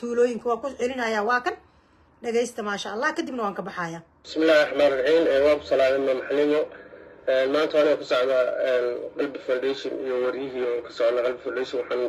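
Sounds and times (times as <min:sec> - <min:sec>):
woman talking: 0:00.0 - 0:01.6, 0:02.2 - 0:04.0.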